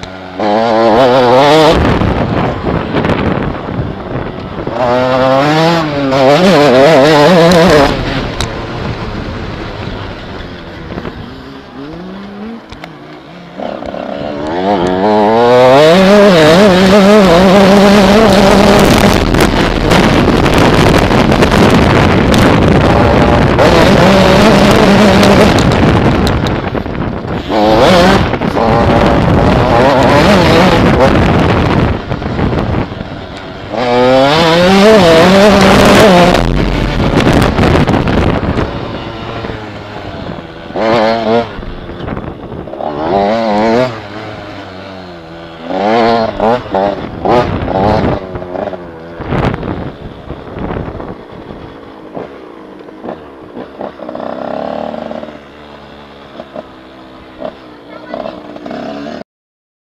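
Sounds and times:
motorcycle engine revving: 0:00.0 - 0:59.2.

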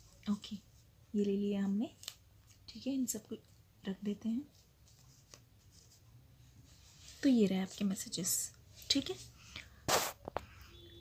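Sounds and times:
card laid on cloth table: 0:09.8 - 0:10.6.

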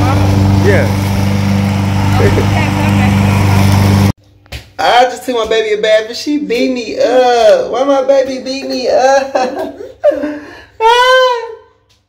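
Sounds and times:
lawn mower running: 0:00.0 - 0:04.2.

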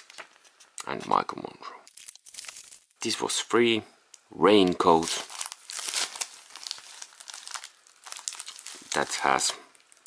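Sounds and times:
plastic bag crinkling: 0:01.9 - 0:02.9, 0:04.9 - 0:10.0.

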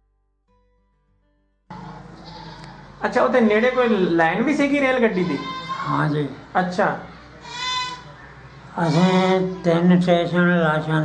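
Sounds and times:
steady background noise: 0:01.7 - 0:11.0.

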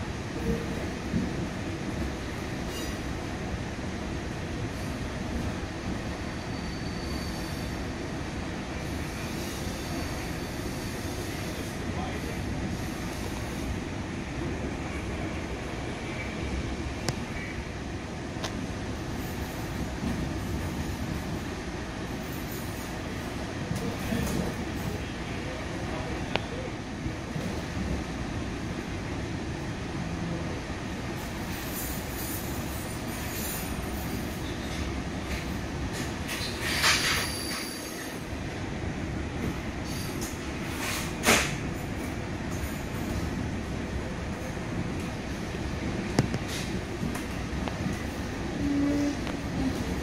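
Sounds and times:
train wheels rolling on rails: 0:00.0 - 0:50.0.

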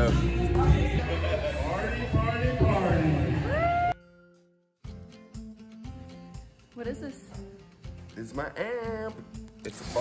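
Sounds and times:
soft background music with beat: 0:00.0 - 0:10.0.

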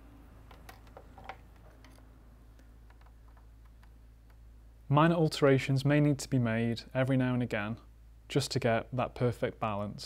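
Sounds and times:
low mains hum: 0:00.0 - 0:10.0
small clicks: 0:00.5 - 0:04.4.

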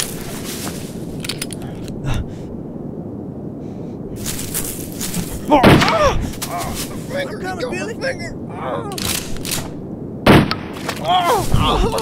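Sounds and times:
person gasping for breath: 0:01.6 - 0:02.5.

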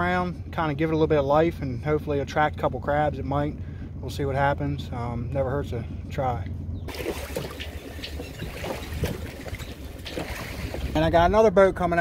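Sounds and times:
motorboat rumble: 0:00.0 - 0:12.0
water sloshing against boat: 0:05.9 - 0:11.4
wind gusting on microphone: 0:05.9 - 0:12.0.

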